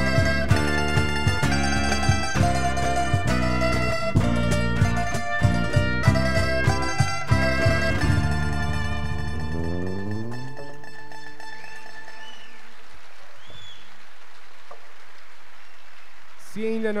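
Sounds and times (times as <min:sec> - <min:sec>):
acoustic band chord ringing: 0:00.0 - 0:12.6
faint arching tones: 0:08.0 - 0:14.0
steady hiss: 0:12.6 - 0:17.0.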